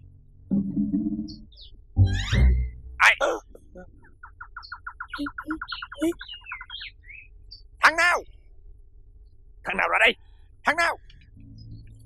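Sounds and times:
bird chirps: 0.9 - 8.4, 11.0 - 12.0
bird trilling: 1.3 - 8.3.

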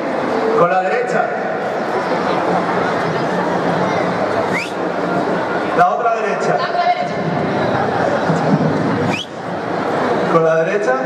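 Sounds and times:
children and adults talking: 0.0 - 11.0
crowd noise: 0.0 - 11.0.

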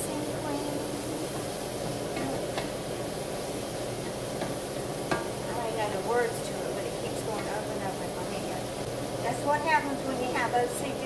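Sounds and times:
mushrooms sizzling in skillet: 0.0 - 11.0
wooden spatula knocking pan: 4.4 - 5.4.

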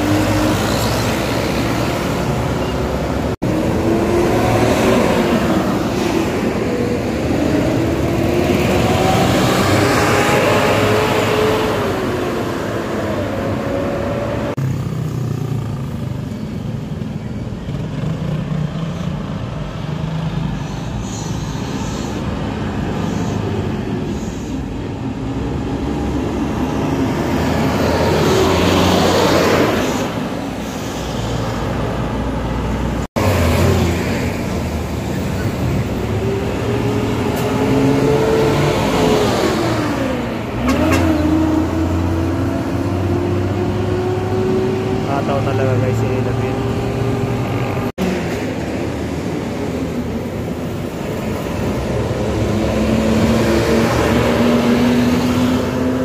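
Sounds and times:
bus passing at speed: 0.0 - 56.0.

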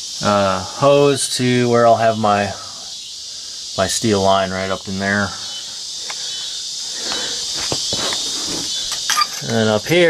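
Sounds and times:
steady high-pitched hiss: 0.0 - 10.0
camera handling knocks and rustles: 7.6 - 8.2.

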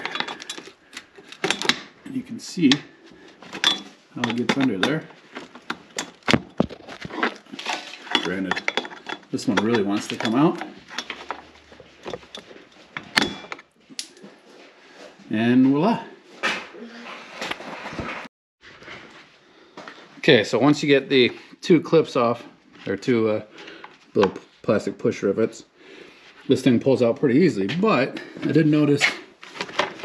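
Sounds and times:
handling noise: 0.0 - 14.4.

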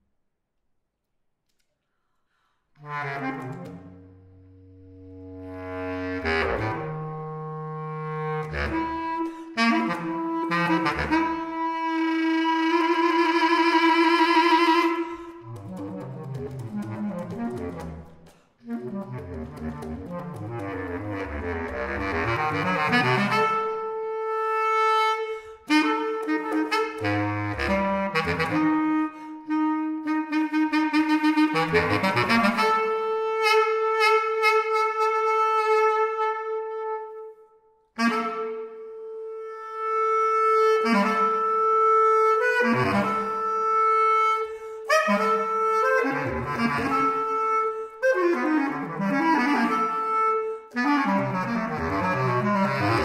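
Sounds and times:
bass clarinet playing: 2.8 - 53.0.

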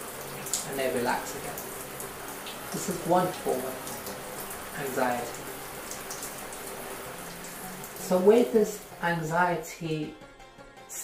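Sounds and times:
shower water spraying: 0.0 - 9.3.

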